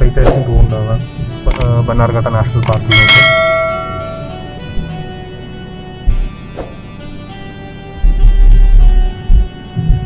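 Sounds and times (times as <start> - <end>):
background music: 0.0 - 10.0
bell-like chime: 2.9 - 4.6.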